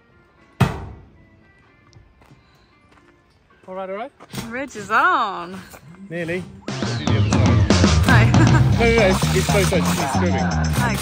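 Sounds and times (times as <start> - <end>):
quiet background music: 0.0 - 11.0
thump on metal roof: 0.6 - 1.1.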